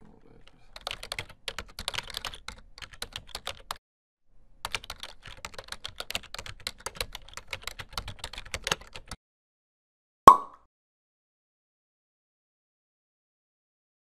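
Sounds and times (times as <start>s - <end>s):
computer keyboard typing: 0.7s - 3.8s, 4.6s - 9.2s.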